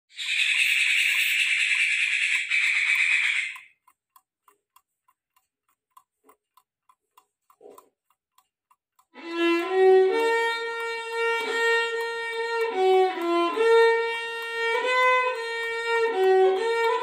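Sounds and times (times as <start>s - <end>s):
faint even ticking: 0.1s - 17.0s.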